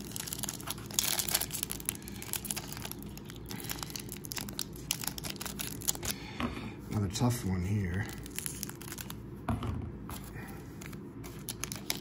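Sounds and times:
foil wrapper crinkling: 0:00.0 - 0:06.2, 0:07.8 - 0:09.2, 0:11.2 - 0:12.0.

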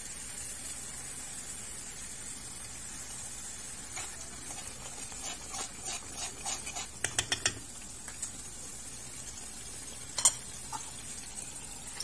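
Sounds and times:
faint steady hiss: 0:00.0 - 0:12.0
wooden spatula scraping a pan: 0:03.9 - 0:07.6.

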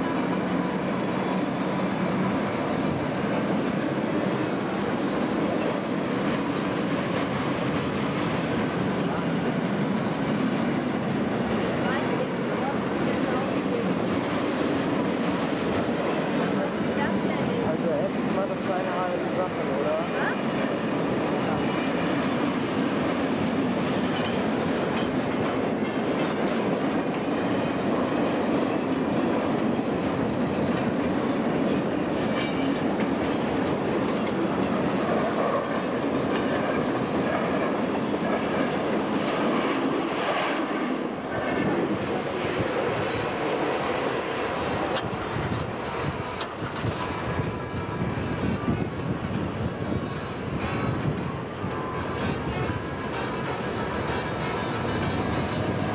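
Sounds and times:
freight train passing: 0:00.0 - 0:55.9
wheels clattering over rail joints: 0:23.1 - 0:40.4.

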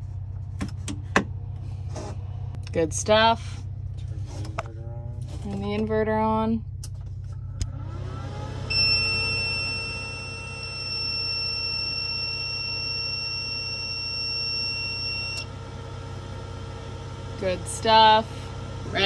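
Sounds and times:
long high-pitched beep: 0:08.7 - 0:15.5.

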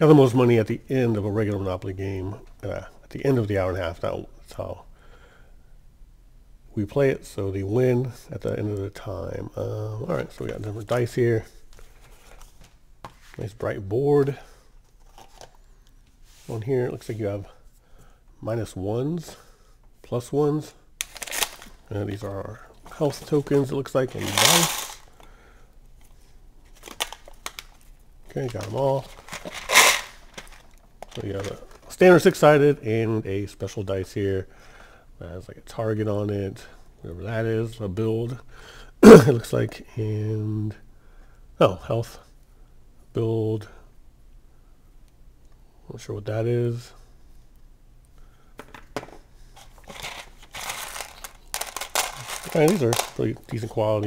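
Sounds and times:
plastic bag crinkling: 0:21.0 - 0:25.1, 0:26.7 - 0:31.9, 0:49.6 - 0:54.0
plastic tokens clicking: 0:50.6 - 0:53.2.

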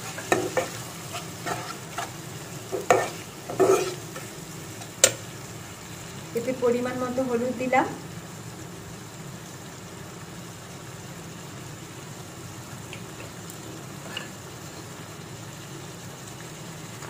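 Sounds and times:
food sizzling in oil: 0:00.0 - 0:17.0.

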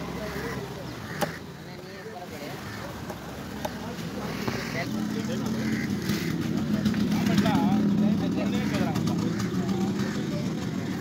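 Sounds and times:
people talking: 0:00.0 - 0:11.0
engine running: 0:02.9 - 0:11.0.

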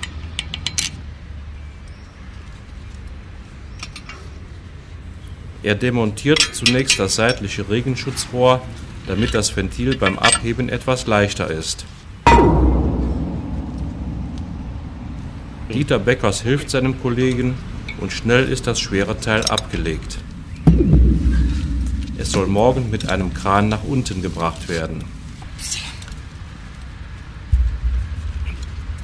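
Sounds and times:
metal pipe clanging on steel: 0:09.2 - 0:10.6, 0:12.3 - 0:16.1
wind buffeting microphone: 0:12.3 - 0:16.7, 0:17.6 - 0:29.0.

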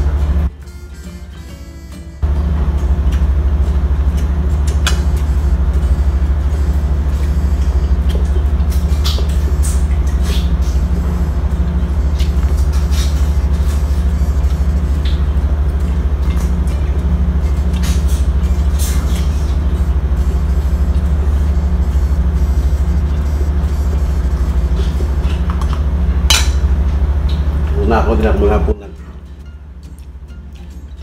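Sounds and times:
ship engine low drone: 0:00.0 - 0:31.0.

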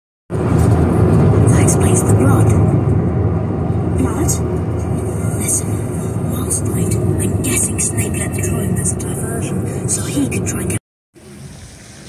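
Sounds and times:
car road and engine rumble: 0:00.3 - 0:12.0.

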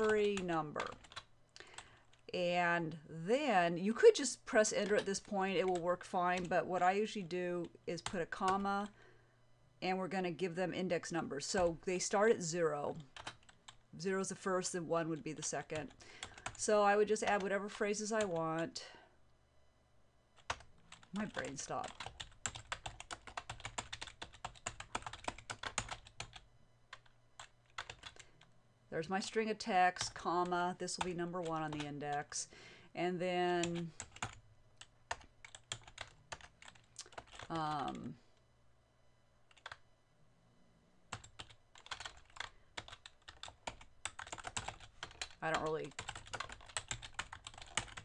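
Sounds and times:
typing on computer keyboard: 0:00.3 - 0:01.3, 0:13.0 - 0:13.8, 0:20.4 - 0:28.2, 0:33.7 - 0:37.5, 0:39.5 - 0:39.8, 0:41.1 - 0:48.0.

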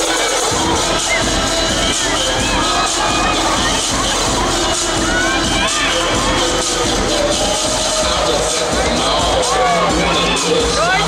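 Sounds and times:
audience cheering and shrieking: 0:00.0 - 0:11.0
loud dance music: 0:00.0 - 0:11.0.

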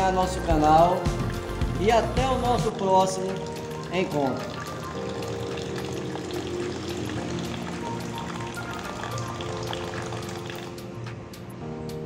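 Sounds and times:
background music with held tones: 0:00.0 - 0:12.0
water stream splashing into basin: 0:02.6 - 0:11.0.

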